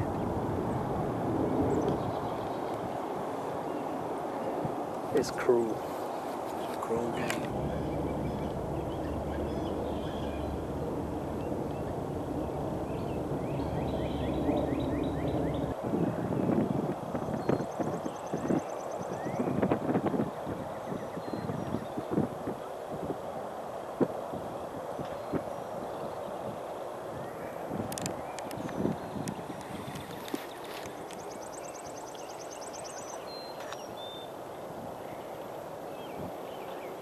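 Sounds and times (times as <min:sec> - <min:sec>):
wind rumbling on microphone: 0:00.0 - 0:37.0.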